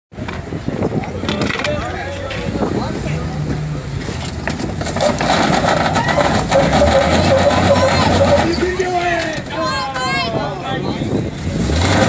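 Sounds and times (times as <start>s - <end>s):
engine humming low: 0.2s - 10.0s
people talking: 0.3s - 4.2s, 6.0s - 11.7s.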